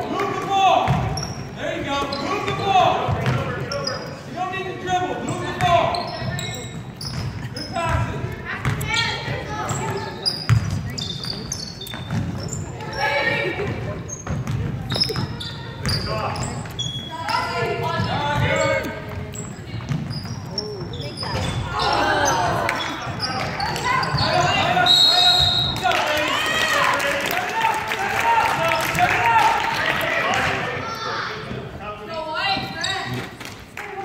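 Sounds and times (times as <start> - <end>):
people shouting and chattering: 0.0 - 34.0
sneaker squeaks: 0.9 - 4.3, 5.2 - 26.5, 32.4 - 33.4.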